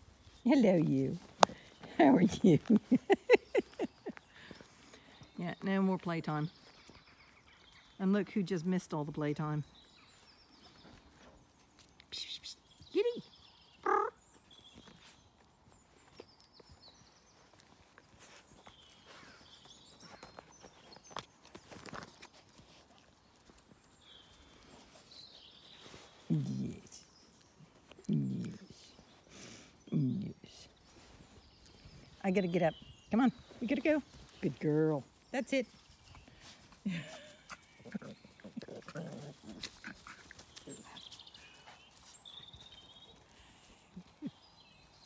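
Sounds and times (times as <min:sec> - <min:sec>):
rustling of dogs being petted: 0:00.0 - 0:12.8, 0:14.5 - 0:45.0.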